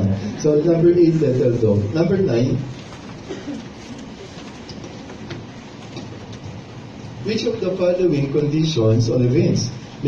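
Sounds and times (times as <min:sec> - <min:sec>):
faint murmur: 0:00.0 - 0:10.0
low rumble and hiss: 0:00.0 - 0:10.0.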